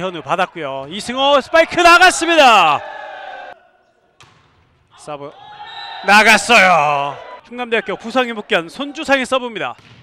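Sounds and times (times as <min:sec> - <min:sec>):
volleyball bouncing on gym floor: 0:04.2 - 0:04.8, 0:09.7 - 0:10.0.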